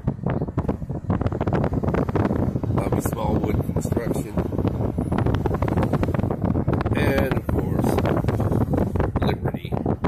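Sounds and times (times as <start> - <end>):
car road and engine noise: 0.0 - 10.0
wind buffeting microphone: 0.0 - 10.0.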